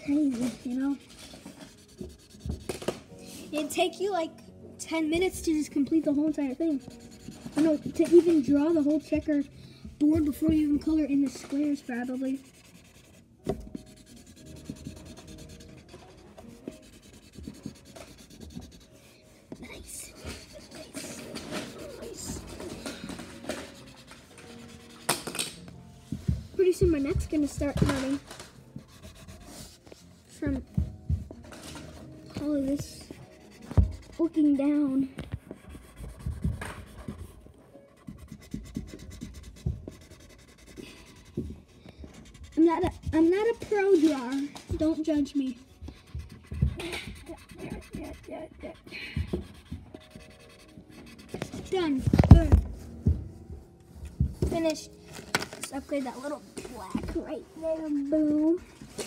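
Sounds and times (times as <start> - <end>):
marker scribbling on cardboard: 0.0 - 3.8, 5.1 - 30.8, 31.6 - 52.5, 55.8 - 59.0.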